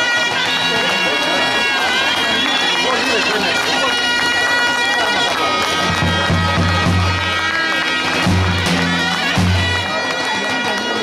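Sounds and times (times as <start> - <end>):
people talking: 0.0 - 11.0
shawm playing folk melody: 0.0 - 11.0.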